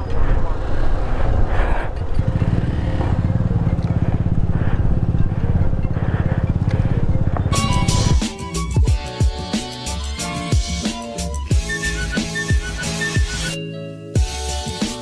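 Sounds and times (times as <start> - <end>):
music: 0.0 - 15.0
motorcycle engine running: 0.2 - 9.0.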